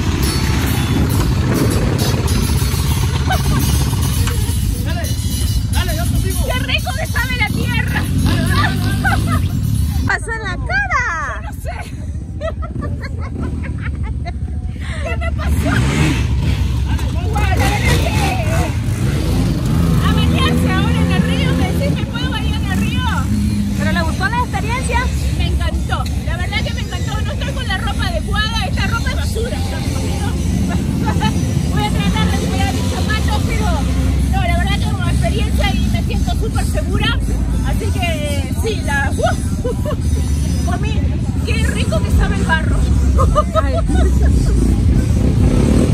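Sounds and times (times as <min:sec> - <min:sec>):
off-road vehicle engines rumbling: 0:00.0 - 0:45.9
people talking: 0:03.3 - 0:45.9.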